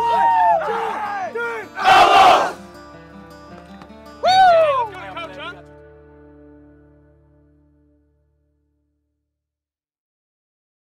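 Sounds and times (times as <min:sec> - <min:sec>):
loud group yell: 0:00.0 - 0:02.6, 0:04.2 - 0:04.9
players shouting together: 0:00.0 - 0:02.6.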